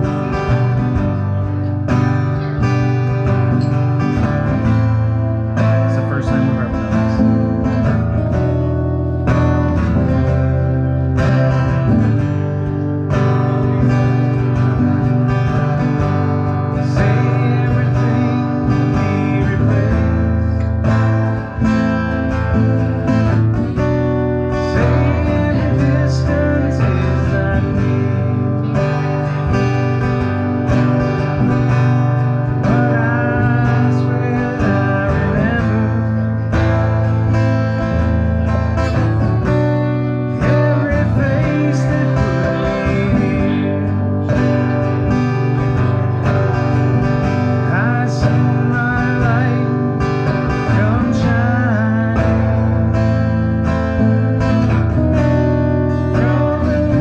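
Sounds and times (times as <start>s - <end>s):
acoustic guitars strumming: 0.0s - 57.0s.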